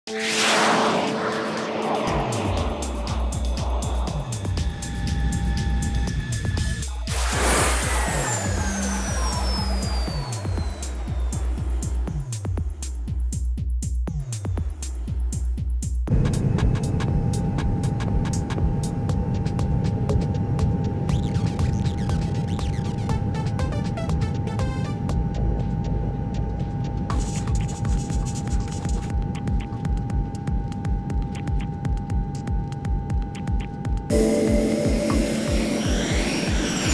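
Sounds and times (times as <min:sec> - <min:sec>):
steady high tone: 0:00.1 - 0:05.7, 0:34.1 - 0:36.9
low throbbing hum: 0:00.1 - 0:12.8, 0:34.1 - 0:36.9.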